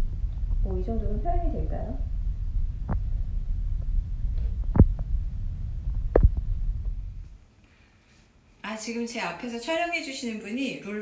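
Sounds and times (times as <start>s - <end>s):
steady low hum: 0.0s - 8.6s.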